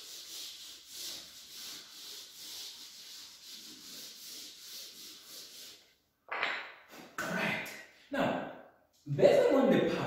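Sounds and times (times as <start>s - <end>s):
duster rubbing on blackboard: 0.0s - 6.0s.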